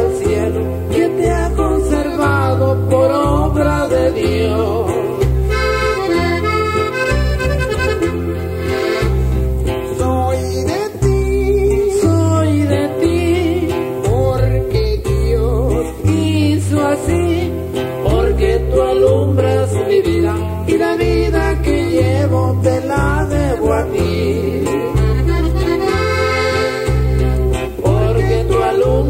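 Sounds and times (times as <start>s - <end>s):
accordion melody: 0.0s - 10.2s, 17.6s - 29.0s
bass notes: 0.0s - 29.0s
plucked strings: 0.0s - 29.0s.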